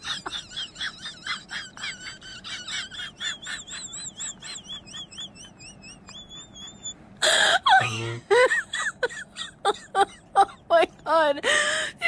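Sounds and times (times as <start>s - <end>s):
rapid high-pitched chirping: 0.7s - 7.0s.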